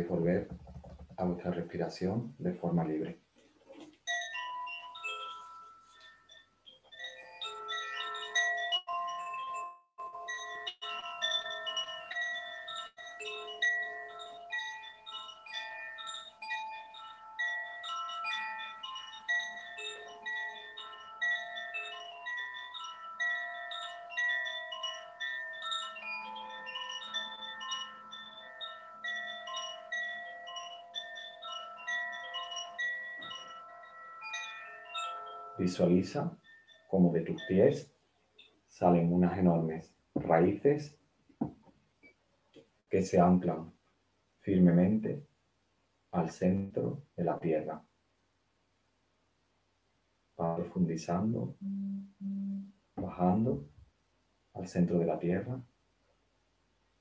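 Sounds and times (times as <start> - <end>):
wind chime tinkling: 4.0 - 40.4, 51.2 - 53.6.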